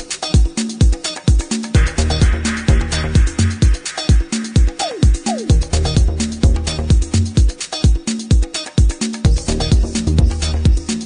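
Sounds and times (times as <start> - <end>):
house music: 0.0 - 11.0.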